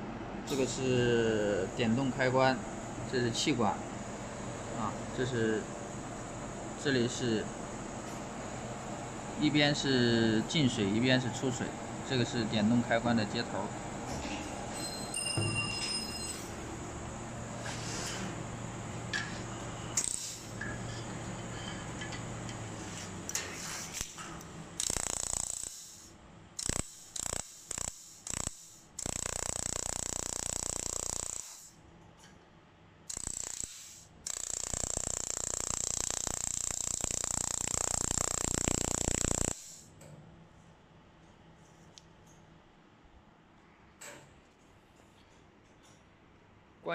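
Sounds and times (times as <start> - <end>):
steady low hum: 0.0 - 14.9, 16.4 - 43.9
laser welding hiss: 20.0 - 20.6, 24.8 - 31.8, 33.1 - 39.9.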